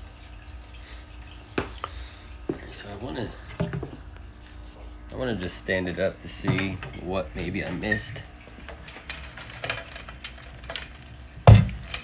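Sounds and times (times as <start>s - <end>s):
soil crumbs trickling on glass: 7.3s - 12.0s.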